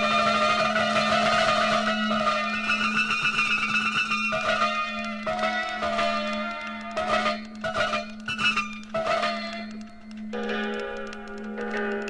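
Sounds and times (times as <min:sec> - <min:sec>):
fast even ticking: 0:00.0 - 0:12.0.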